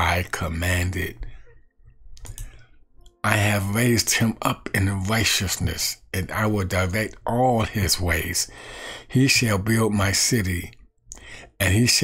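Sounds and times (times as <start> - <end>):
man speaking: 0.0 - 1.3, 3.2 - 8.5, 9.1 - 10.8, 11.6 - 12.0.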